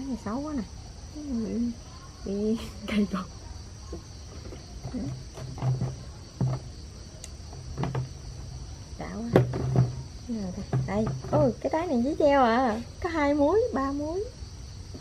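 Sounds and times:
crickets chirring: 0.0s - 15.0s.

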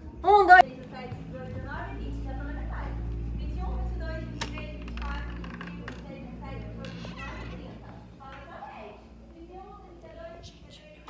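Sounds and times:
distant woman counting aloud: 0.2s - 2.7s.

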